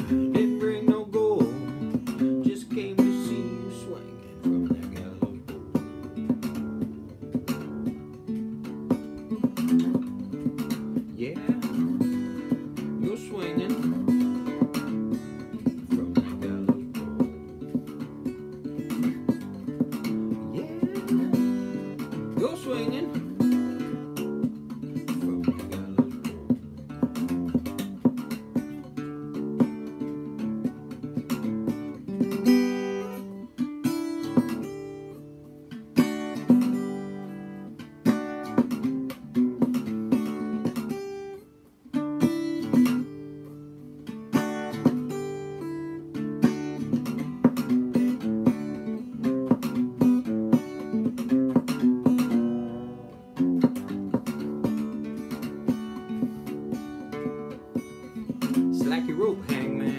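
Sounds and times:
acoustic guitar picking: 0.0 - 59.9.

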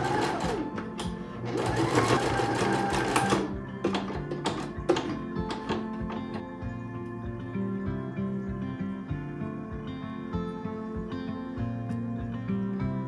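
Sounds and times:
sewing machine stitching: 0.0 - 5.1.

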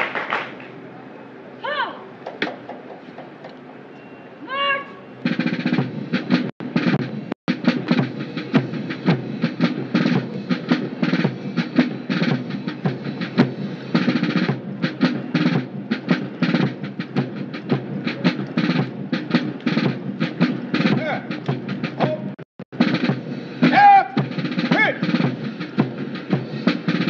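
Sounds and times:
person shouting: 1.6 - 2.0, 23.7 - 25.0
marching band playing: 5.2 - 27.0
steady drum beat: 5.2 - 27.0.

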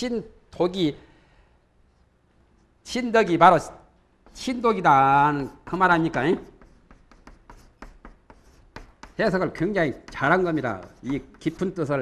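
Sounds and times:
chalk on blackboard: 4.2 - 12.0.

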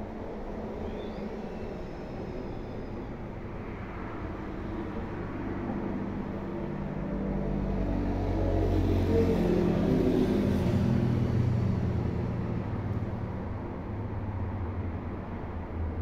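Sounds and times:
vehicle passing by: 4.0 - 14.6.

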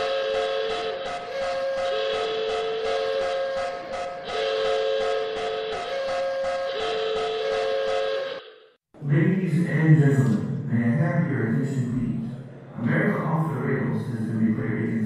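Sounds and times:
train whistle: 0.0 - 8.8.

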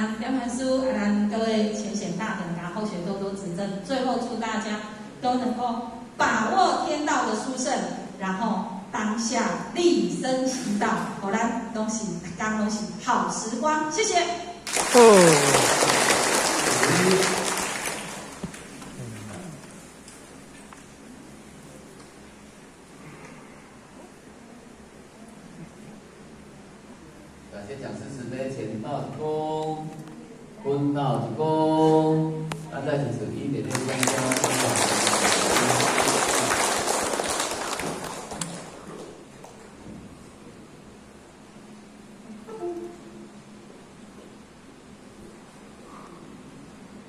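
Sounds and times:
audience applauding: 14.7 - 19.7, 33.7 - 39.7.

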